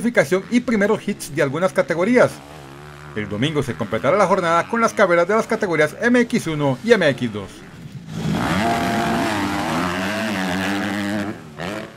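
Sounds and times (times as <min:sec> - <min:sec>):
motocross bike engines revving: 0:00.0 - 0:11.9.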